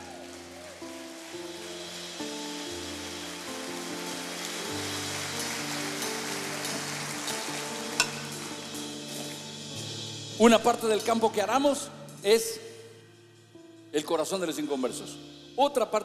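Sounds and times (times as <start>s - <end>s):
audience applauding: 0.0s - 9.0s
soft music of sustained chords: 0.0s - 16.0s.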